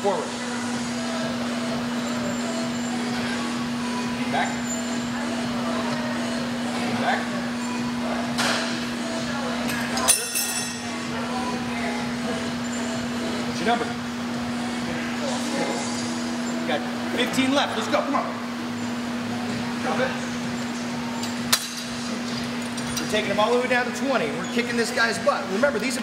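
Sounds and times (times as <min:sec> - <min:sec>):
humming gym background noise: 0:00.0 - 0:26.0.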